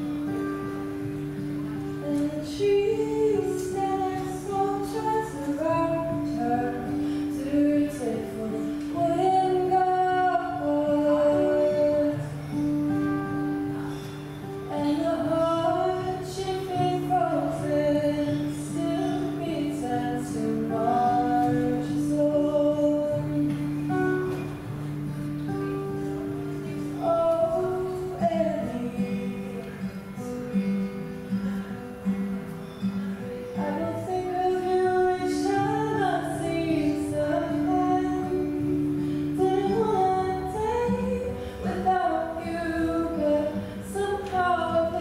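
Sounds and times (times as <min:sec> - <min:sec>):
woman singing: 0:00.0 - 0:13.9, 0:14.5 - 0:24.5, 0:25.5 - 0:30.7, 0:33.5 - 0:45.0
acoustic guitar chords: 0:00.0 - 0:45.0.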